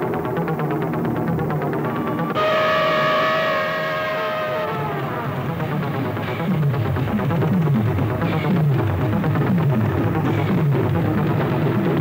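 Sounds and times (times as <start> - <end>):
pulsing music bed: 0.0 - 12.0
high sustained music note: 1.8 - 7.6.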